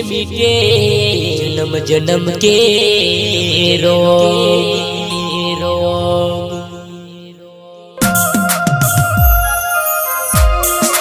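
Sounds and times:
devotional music and chant: 0.0 - 11.0.

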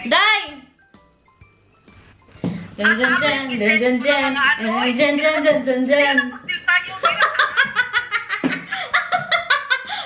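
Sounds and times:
woman laughing hard: 7.0 - 10.0.

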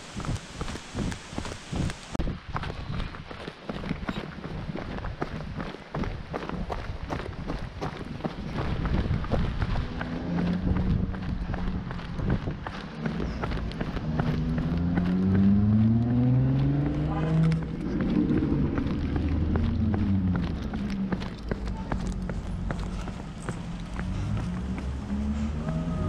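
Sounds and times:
running footsteps: 0.0 - 26.0
car passing by: 9.4 - 26.0.

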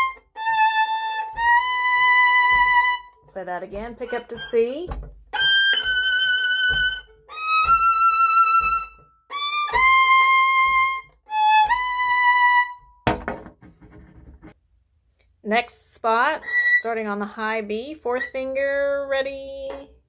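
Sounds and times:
solo violin: 0.0 - 13.0
short knock: 13.0 - 14.6.

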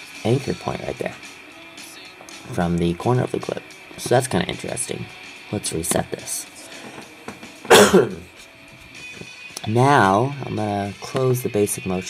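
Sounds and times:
man coughing: 7.6 - 8.3.

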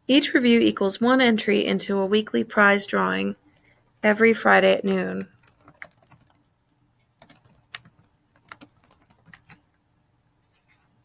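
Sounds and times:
computer keyboard keystrokes: 5.3 - 6.4, 7.2 - 9.6.

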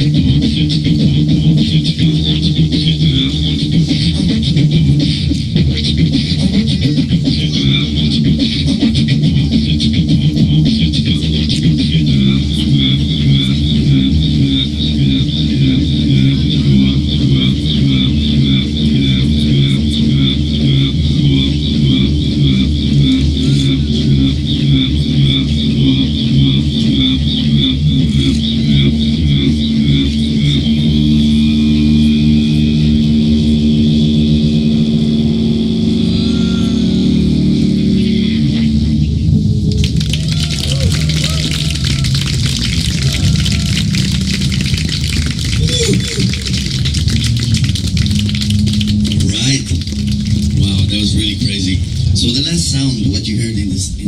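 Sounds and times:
didgeridoo drone: 0.0 - 54.0
voice-like calls through didgeridoo: 0.0 - 54.0.

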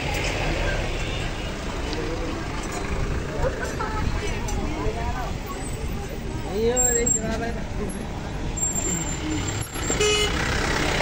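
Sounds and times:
people talking: 0.0 - 9.4
road traffic rumble: 0.0 - 11.0.

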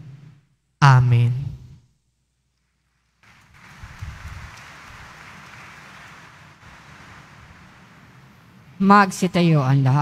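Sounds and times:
hissy room ambience: 1.7 - 10.0.

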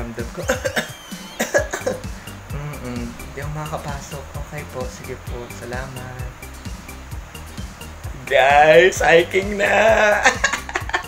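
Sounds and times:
background music: 0.0 - 11.0
man coughing: 0.5 - 3.1.

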